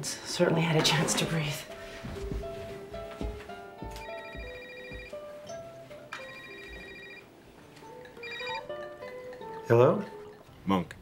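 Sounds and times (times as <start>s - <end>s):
soft background music: 0.0s - 11.0s
cell phone ringtone: 3.9s - 7.4s, 8.1s - 9.1s.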